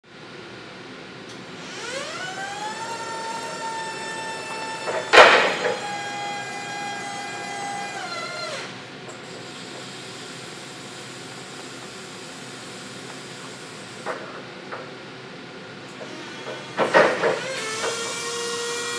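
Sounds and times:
hydraulic pump motor whining: 1.6s - 9.9s, 15.9s - 18.9s.

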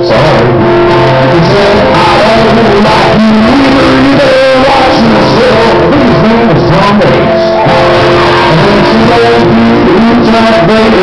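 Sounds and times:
acoustic guitar strummed and picked: 0.0s - 11.0s.

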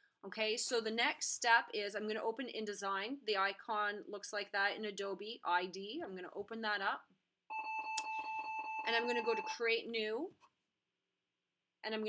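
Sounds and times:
high electronic beep: 7.5s - 9.6s.

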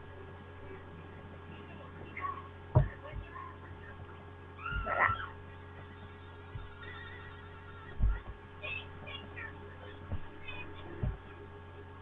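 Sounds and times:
steady electrical hum: 0.0s - 12.0s
low handling thumps: 2.7s - 3.6s, 6.5s - 7.0s, 7.8s - 9.0s, 9.9s - 11.5s.

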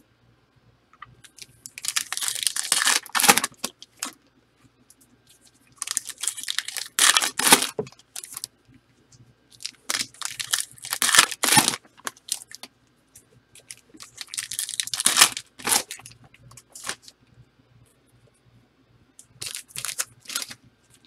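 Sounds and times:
card packaging crinkling and tearing: 1.3s - 4.1s, 5.8s - 8.5s, 9.6s - 12.7s, 13.6s - 17.1s, 19.4s - 20.6s.

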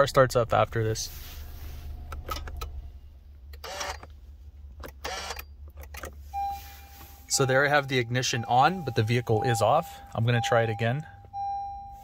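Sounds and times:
low steady cabin hum: 0.0s - 12.0s.

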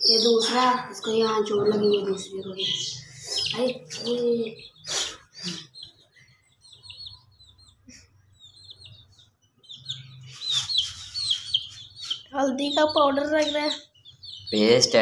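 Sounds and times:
chicks peeping: 0.0s - 15.0s.

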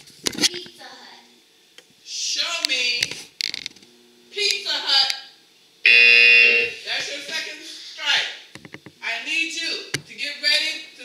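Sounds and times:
game-show buzzer: 5.9s - 7.0s.

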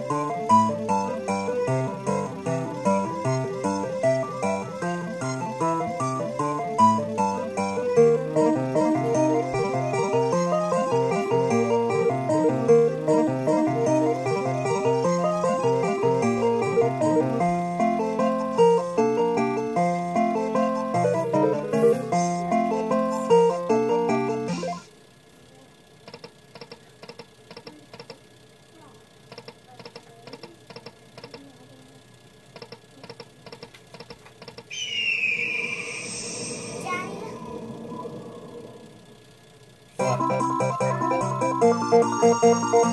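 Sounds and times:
slot machine guitar-like tune: 0.0s - 24.8s, 40.0s - 42.9s.

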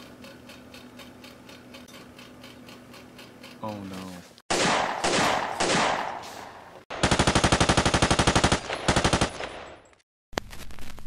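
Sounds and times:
automatic gunfire bursts: 4.5s - 6.2s, 6.9s - 9.8s.

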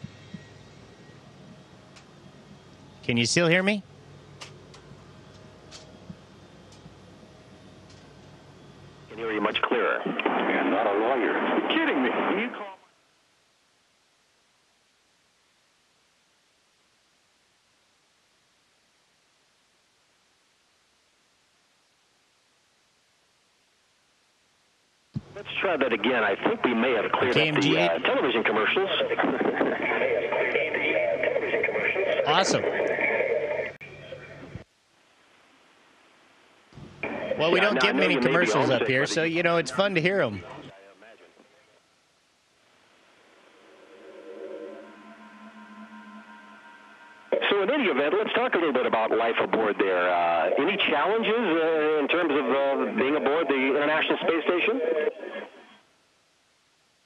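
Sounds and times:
low background hum: 0.0s - 57.0s
voice over radio: 9.1s - 12.9s, 25.4s - 33.5s, 47.3s - 55.8s.

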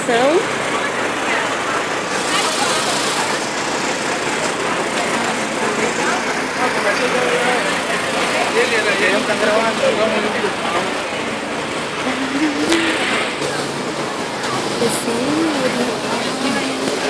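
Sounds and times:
passing traffic: 0.0s - 17.0s
people talking: 0.0s - 17.0s.

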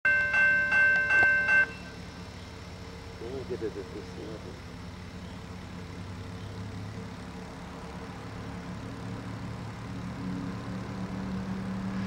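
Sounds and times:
crossing warning bell ringing: 0.0s - 2.2s.

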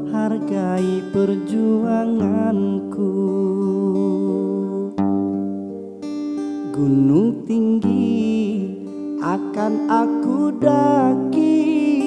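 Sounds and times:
acoustic guitar chord ringing: 0.0s - 12.0s
man singing a long note: 6.6s - 12.0s.

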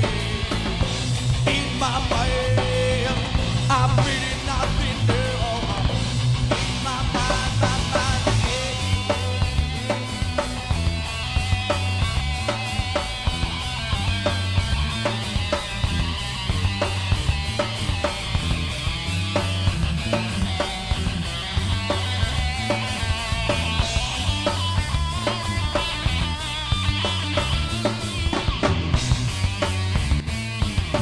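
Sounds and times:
bass guitar: 0.0s - 31.0s
drum kit: 0.0s - 31.0s
electric guitar: 0.0s - 31.0s.

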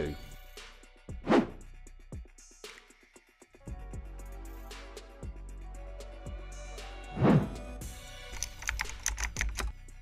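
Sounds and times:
background music: 0.0s - 10.0s
computer keyboard typing: 8.3s - 9.8s.

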